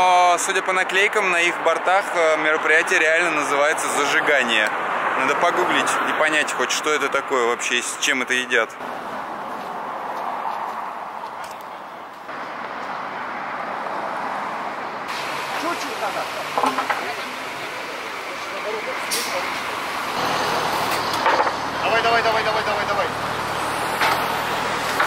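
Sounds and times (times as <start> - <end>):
road traffic noise: 0.0 - 25.0.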